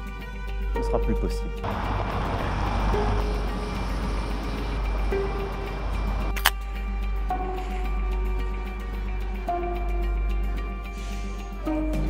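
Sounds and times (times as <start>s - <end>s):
background music: 0.0s - 12.0s
city street traffic: 1.6s - 6.6s.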